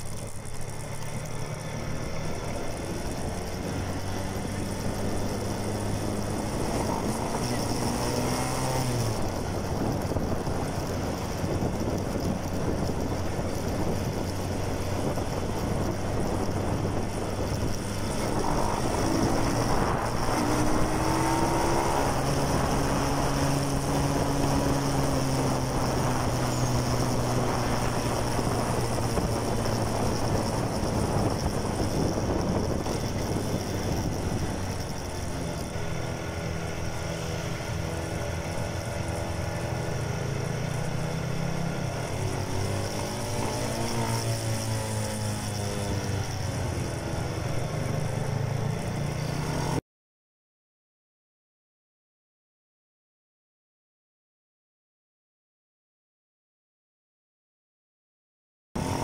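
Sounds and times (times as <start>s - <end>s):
small motorcycle engine running: 0.0s - 49.8s, 58.8s - 59.0s
wind rush on microphone: 2.7s - 39.4s.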